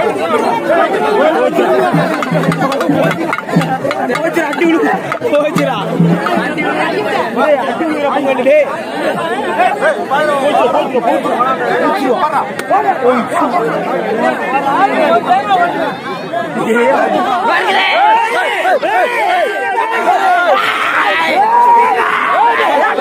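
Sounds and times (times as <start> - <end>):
crowd chatter: 0.0 - 23.0
raised voices: 0.0 - 23.0.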